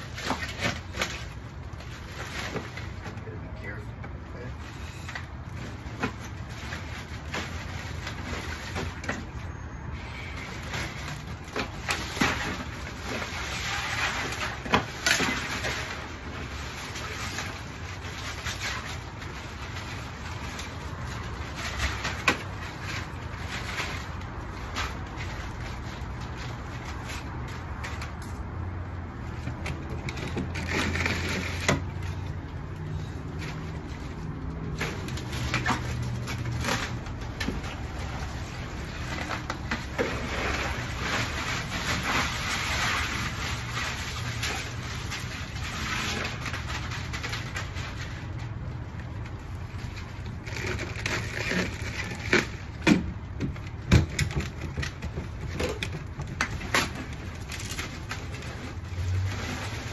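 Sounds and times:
plastic bags crinkling: 0.0s - 59.9s.

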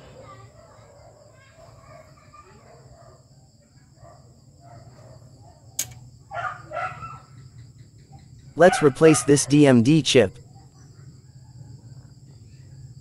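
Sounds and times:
sharp click of chip released: 5.8s - 6.0s.

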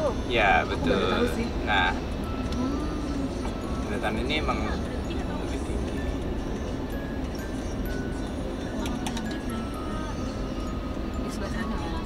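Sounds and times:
car driving low rumble: 0.0s - 12.0s.

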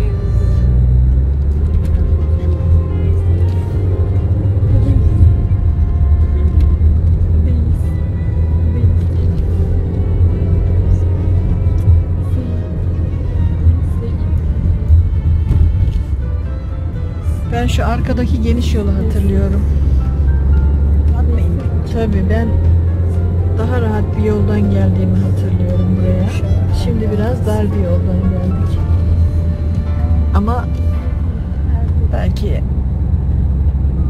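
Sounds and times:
car driving rumble: 0.0s - 34.0s.

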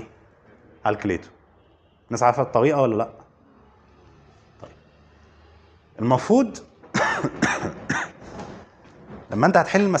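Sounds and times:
man coughing: 6.9s - 8.2s.

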